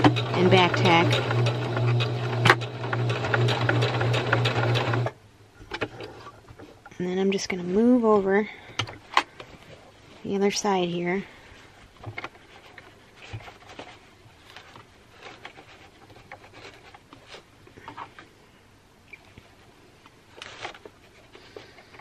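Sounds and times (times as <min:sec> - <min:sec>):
fabric rustling: 0:11.6 - 0:17.5.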